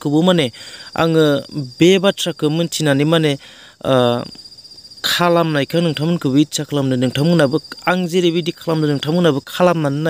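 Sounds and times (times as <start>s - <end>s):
man talking: 0.0s - 4.4s, 5.0s - 10.0s
cricket trilling: 0.0s - 10.0s.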